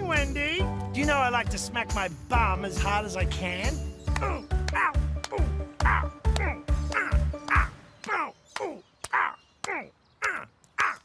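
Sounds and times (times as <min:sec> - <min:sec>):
cartoon music with bouncy bass: 0:00.0 - 0:07.8.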